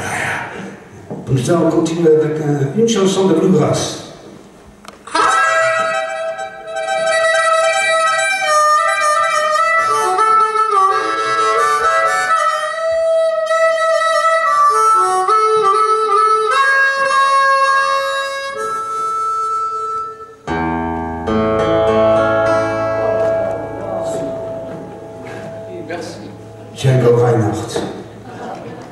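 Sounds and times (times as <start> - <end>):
band with bass and guitar: 4.1 - 28.9
harmonica playing: 5.0 - 28.2.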